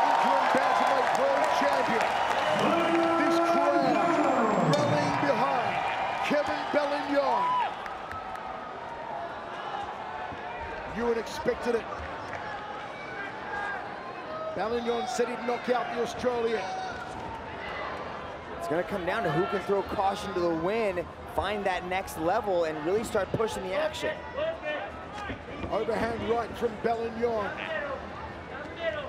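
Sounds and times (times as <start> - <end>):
crowd shouting and cheering: 0.0 - 29.0.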